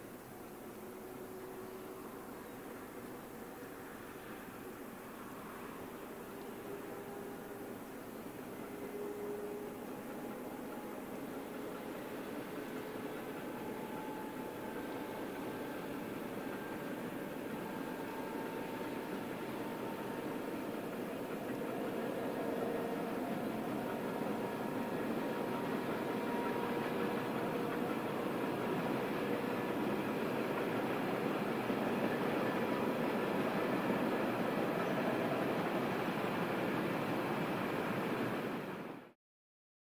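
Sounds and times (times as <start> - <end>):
freight train rumbling: 0.0 - 39.2.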